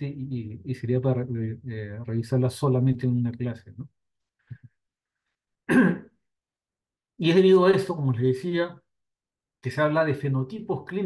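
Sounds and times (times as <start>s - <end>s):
person clearing throat: 5.7s - 6.2s.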